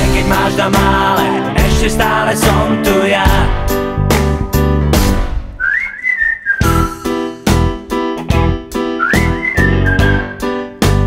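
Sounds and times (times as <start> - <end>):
band chords: 0.0 - 5.6, 6.8 - 11.0
whistled melody: 5.6 - 7.4, 8.9 - 11.0.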